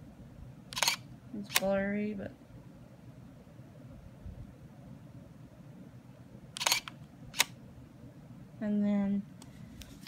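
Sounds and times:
camera shutter double click: 0.7s - 1.7s, 6.6s - 7.6s.

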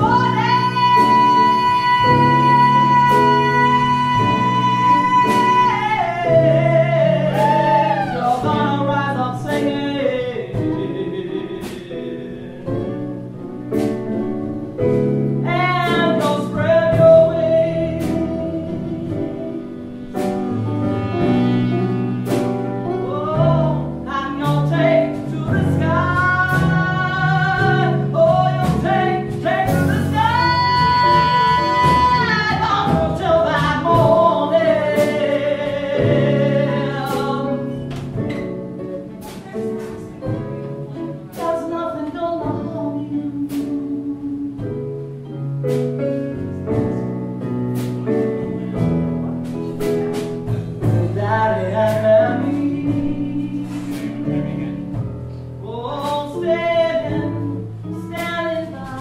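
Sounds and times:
woman singing: 0.0s - 13.0s, 15.4s - 19.8s, 23.0s - 38.0s, 41.2s - 45.0s, 50.8s - 59.0s
keyboard accompaniment: 0.0s - 59.0s.

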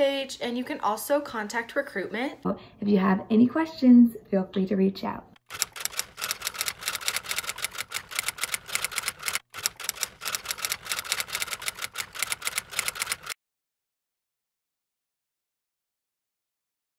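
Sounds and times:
rapid key clicks: 5.4s - 13.4s.

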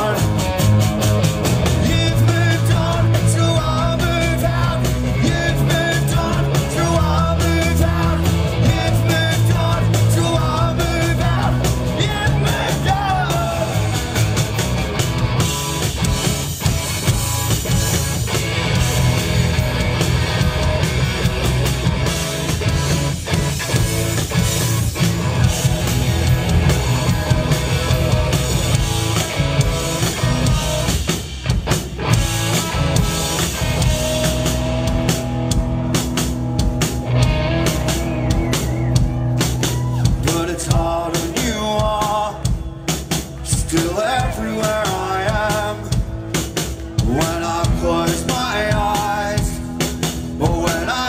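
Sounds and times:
drum kit: 0.0s - 51.0s
electric guitar: 0.0s - 51.0s.

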